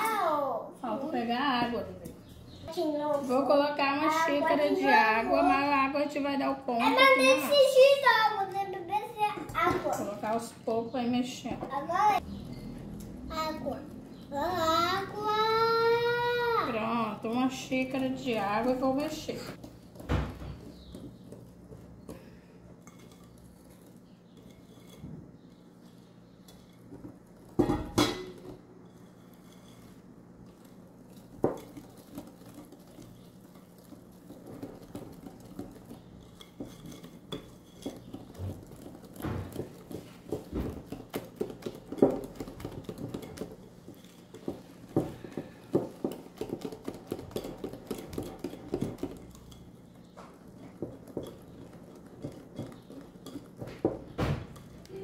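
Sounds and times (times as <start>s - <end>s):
whisk tapping against glass bowl: 31.1s - 55.0s.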